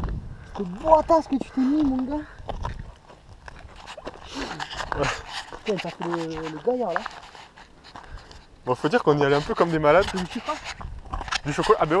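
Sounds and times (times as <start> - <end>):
wind rumble on microphone: 0.0 - 5.3, 9.4 - 12.0.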